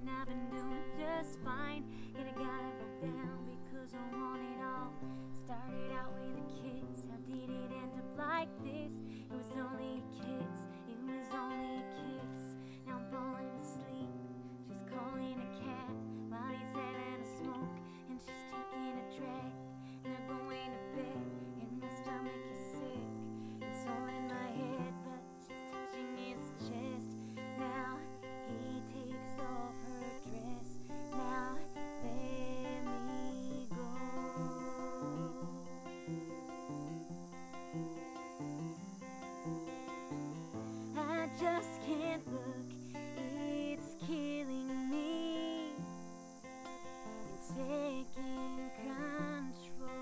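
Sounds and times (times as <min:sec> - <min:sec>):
woman singing: 0:00.0 - 0:37.0, 0:40.1 - 0:50.0
acoustic guitar strumming chords: 0:00.0 - 0:50.0.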